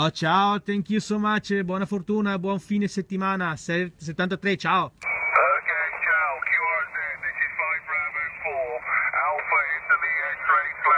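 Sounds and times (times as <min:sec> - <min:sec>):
thin radio voice: 0:05.0 - 0:10.9.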